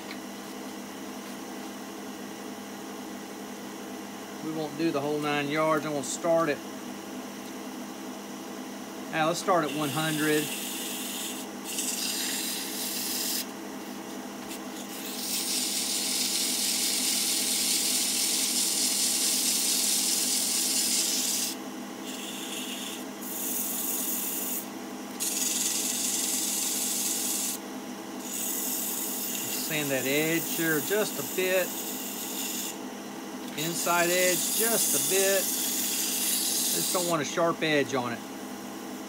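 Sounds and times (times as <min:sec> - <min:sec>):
lathe motor humming: 0:09.2 - 0:13.5, 0:28.2 - 0:32.8, 0:33.4 - 0:38.0
sandpaper hissing on spinning wood: 0:09.2 - 0:13.5, 0:14.7 - 0:27.6, 0:28.2 - 0:32.8, 0:33.6 - 0:37.4.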